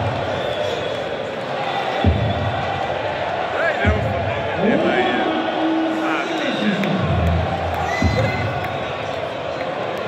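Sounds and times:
arena crowd din: 0:00.0 - 0:10.0.

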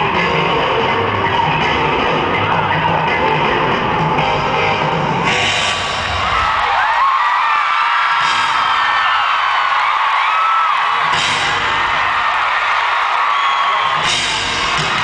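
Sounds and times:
loud band music: 0:00.0 - 0:07.2, 0:08.0 - 0:15.0
crowd screaming and whooping: 0:00.0 - 0:15.0.

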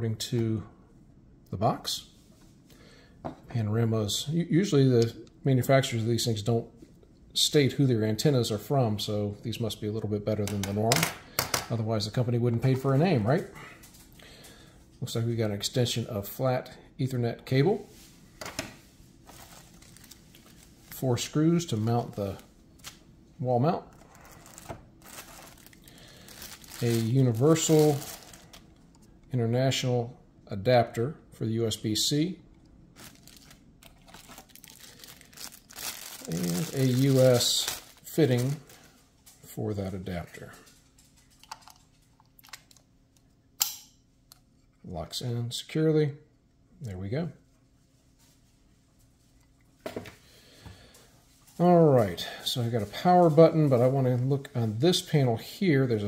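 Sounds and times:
cable rustling: 0:17.8 - 0:29.3, 0:33.0 - 0:43.3.

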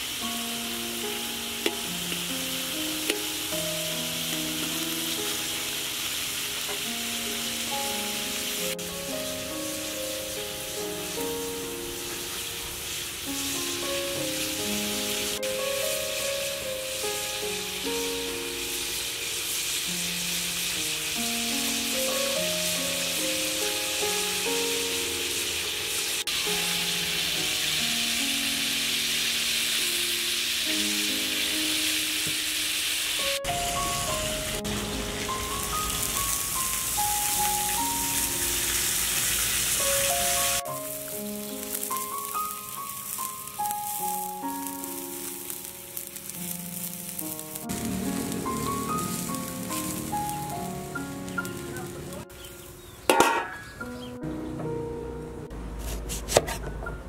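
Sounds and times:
meat sizzling in a wok: 0:00.0 - 0:53.9
slow background music: 0:00.2 - 0:57.0.

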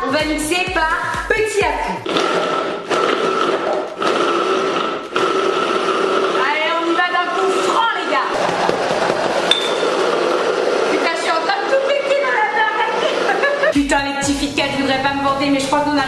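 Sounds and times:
hand blender motor whine: 0:02.0 - 0:13.8.

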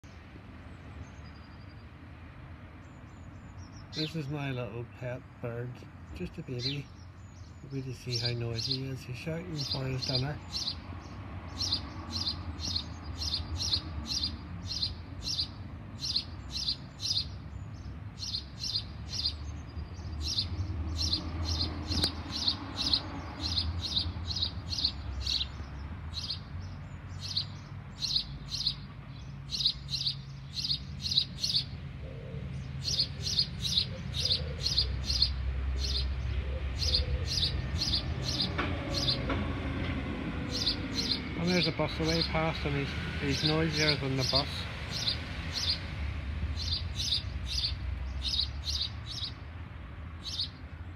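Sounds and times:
baby bird begging chirps: 0:09.6 - 0:10.8, 0:11.5 - 0:17.5, 0:18.2 - 0:19.4, 0:20.1 - 0:26.5, 0:27.2 - 0:28.8, 0:29.5 - 0:31.8, 0:32.8 - 0:39.2, 0:40.5 - 0:42.4, 0:43.3 - 0:45.8, 0:46.6 - 0:49.4.

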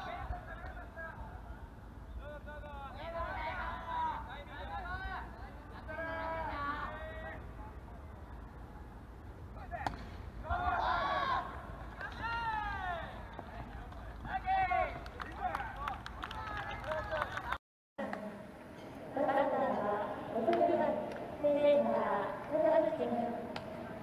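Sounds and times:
bat hitting a ball: 0:09.8 - 0:10.2
players shouting: 0:10.4 - 0:13.4.

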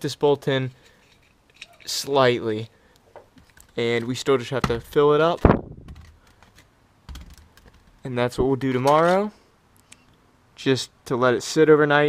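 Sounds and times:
plastic bottles clicking: 0:03.2 - 0:08.0.

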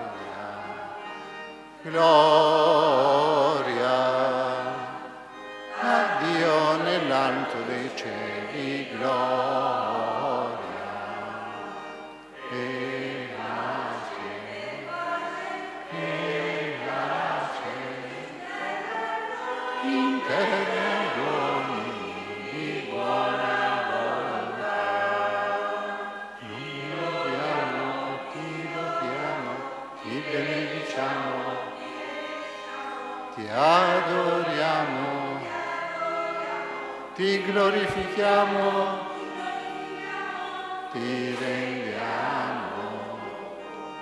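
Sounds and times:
church choir singing: 0:00.0 - 0:44.0.

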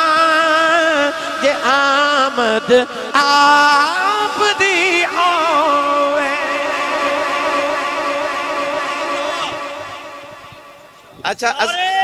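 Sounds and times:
man chanting a long note: 0:00.0 - 0:11.0.

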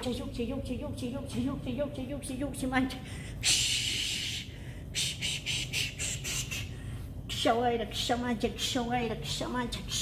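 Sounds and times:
whispered chant: 0:00.0 - 0:10.0
person hissing sh sounds: 0:03.4 - 0:06.8.

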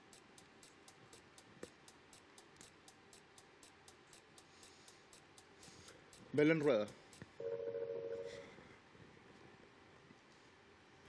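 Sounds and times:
electronic two-tone beep: 0:07.4 - 0:08.4.

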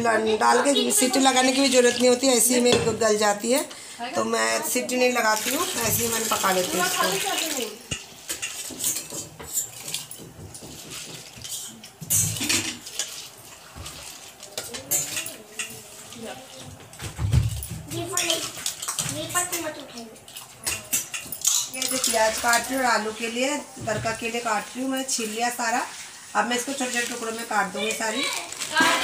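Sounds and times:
steel utensils clattering: 0:05.3 - 0:16.0, 0:17.6 - 0:23.1.

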